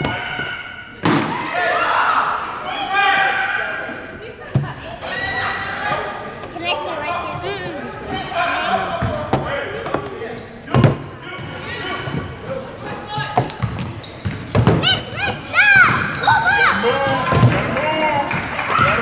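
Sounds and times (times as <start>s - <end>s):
players calling out: 0.0s - 19.0s
spectators talking: 0.0s - 19.0s.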